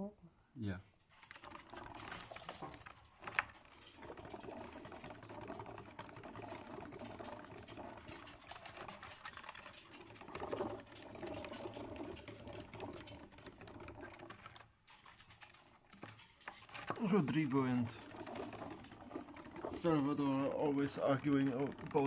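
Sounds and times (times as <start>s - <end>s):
exercise wheel rattling: 0.9s - 22.0s.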